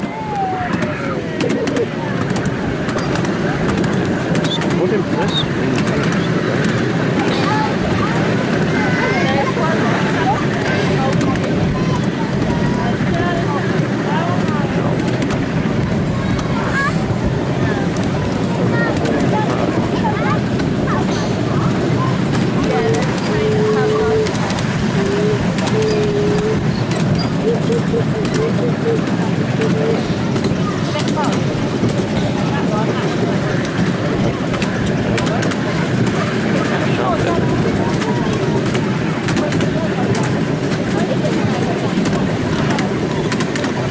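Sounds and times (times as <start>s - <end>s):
miniature train rumbling: 0.0s - 43.9s
wind on microphone: 0.0s - 43.9s.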